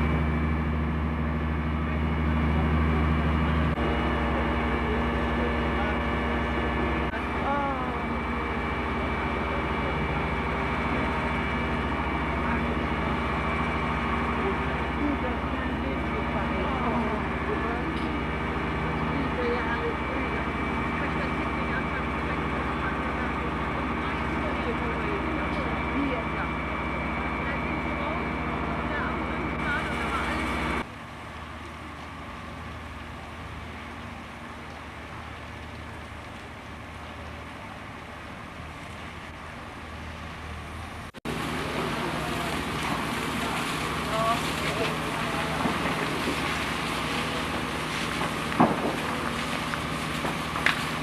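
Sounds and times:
distant voices calling out: 0.0s - 51.0s
fire engine pumps droning: 0.0s - 51.0s.

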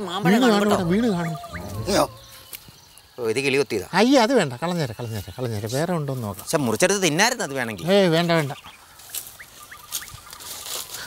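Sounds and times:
bird chirping: 0.0s - 10.6s
bird trill: 0.3s - 3.5s
rustling of leaf litter: 8.1s - 11.0s.

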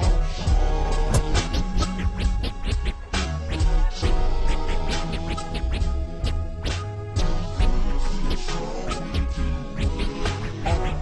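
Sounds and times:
slowed hip hop beat with bass: 0.0s - 11.0s
turntable scratching: 0.0s - 11.0s.

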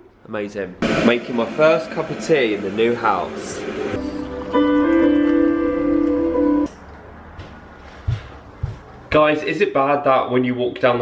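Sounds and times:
held music chord: 4.0s - 6.7s.

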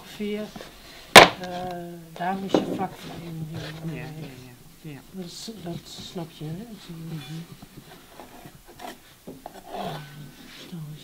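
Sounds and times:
hand tool scraping clay: 5.5s - 10.8s.

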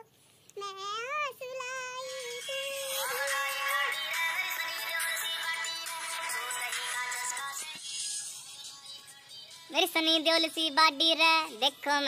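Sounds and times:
girl singing: 0.0s - 7.9s, 8.7s - 12.0s
music track with sung vocals: 1.9s - 12.0s.

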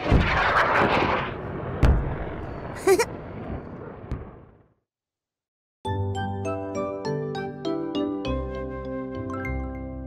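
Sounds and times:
rocket engines roaring: 0.0s - 4.6s.

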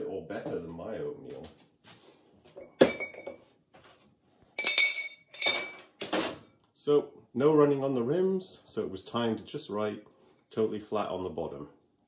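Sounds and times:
pottery clinking on ceramic: 2.6s - 3.4s, 4.6s - 5.9s.

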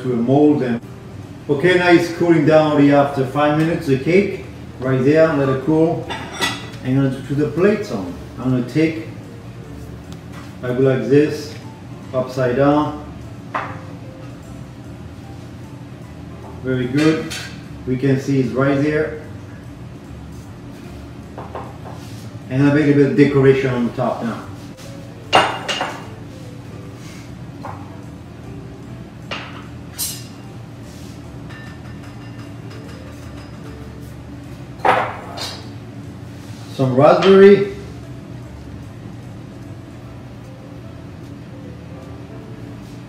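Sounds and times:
faint background music: 0.0s - 43.0s.

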